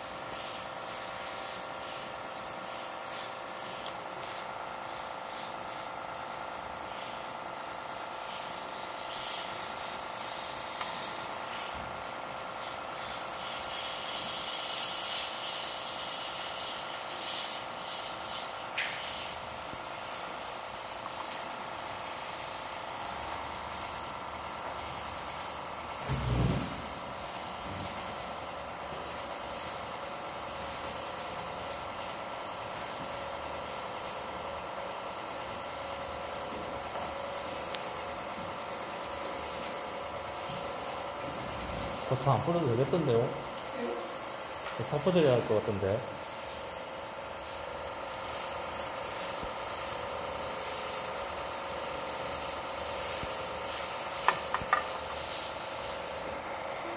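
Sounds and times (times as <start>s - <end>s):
hiss: 0.0s - 56.9s
mechanical hum: 0.0s - 56.9s.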